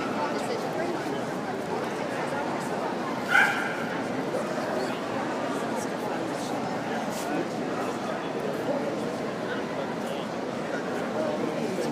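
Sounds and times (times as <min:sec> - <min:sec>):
murmur of crowd indoors: 0:00.0 - 0:11.9.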